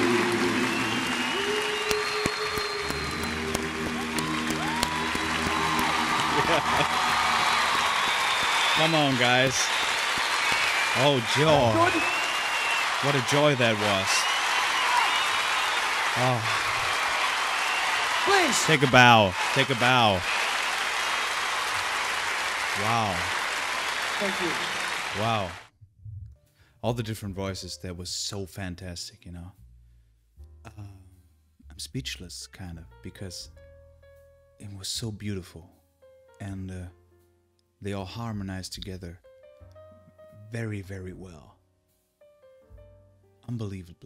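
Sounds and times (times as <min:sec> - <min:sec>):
concert audience applauding: 0:00.0 - 0:25.7.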